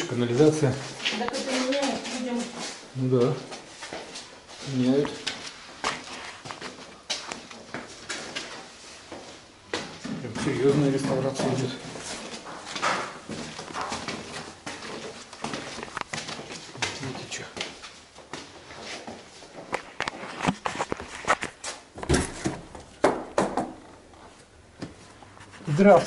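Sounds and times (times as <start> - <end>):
footsteps on stairs: 0.0 - 25.2.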